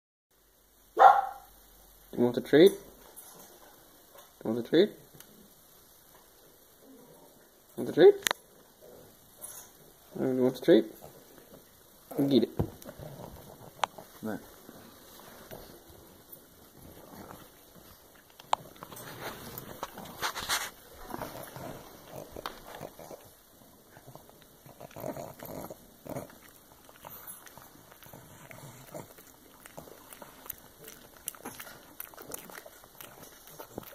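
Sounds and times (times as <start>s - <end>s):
dog barking: 1.0s - 1.5s
dog chewing crunchy treat: 11.0s - 33.9s.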